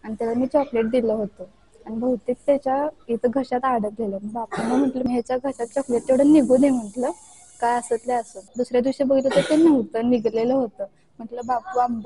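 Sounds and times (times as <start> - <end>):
woman talking: 0.0 - 12.0
steady high hiss: 4.3 - 11.9.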